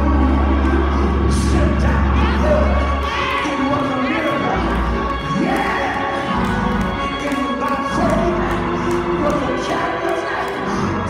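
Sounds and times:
congregation shouting: 0:00.0 - 0:08.6
keyboard chords: 0:00.0 - 0:11.0.

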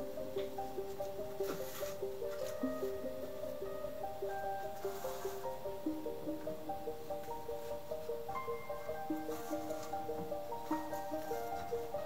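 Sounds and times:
background music melody: 0:00.0 - 0:12.0.

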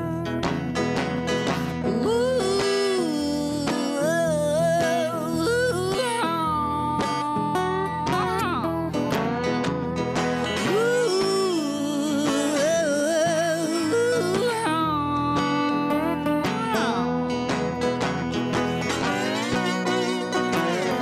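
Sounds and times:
rhythm guitar: 0:00.0 - 0:21.0
slide guitar melody: 0:00.0 - 0:21.0.

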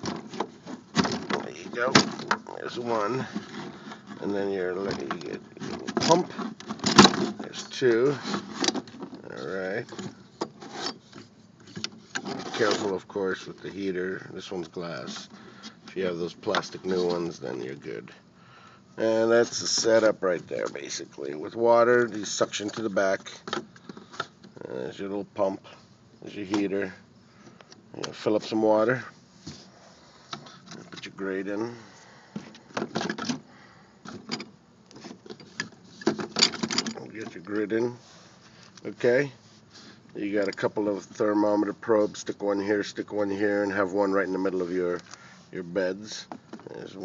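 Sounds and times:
faint rubbing of parts: 0:00.0 - 0:47.0.

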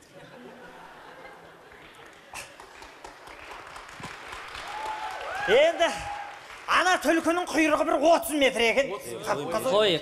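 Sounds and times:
faint audience clapping: 0:01.9 - 0:07.9.

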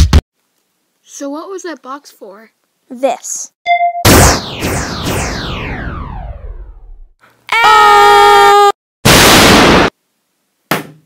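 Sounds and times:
rocket blast rush of noise: 0:04.1 - 0:07.0, 0:09.1 - 0:09.9.

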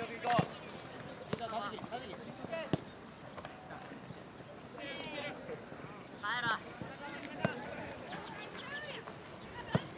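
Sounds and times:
faint soccer game background: 0:00.0 - 0:09.9.

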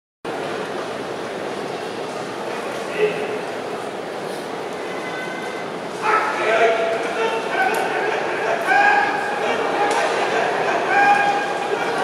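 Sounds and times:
crowd in hall: 0:00.3 - 0:12.0
referee calling out: 0:06.0 - 0:12.0.

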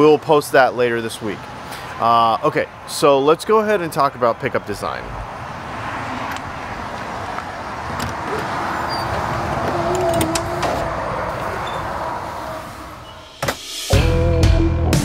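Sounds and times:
outdoor background noise: 0:00.0 - 0:13.9
door handling clicks and knocks: 0:07.8 - 0:11.0.

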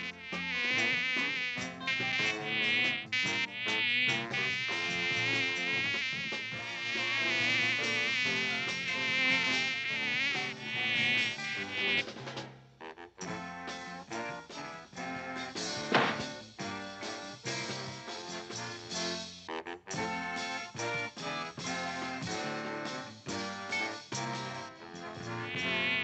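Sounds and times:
cartoon fly buzzing: 0:00.0 - 0:12.0, 0:25.3 - 0:26.0.

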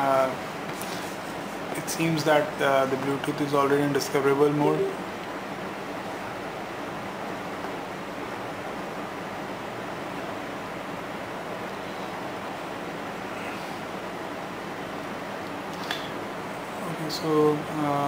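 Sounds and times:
steady background hiss: 0:00.0 - 0:18.0.

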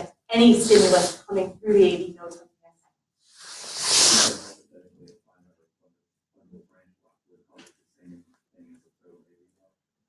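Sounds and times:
hiss: 0:00.6 - 0:01.3, 0:03.3 - 0:04.6.

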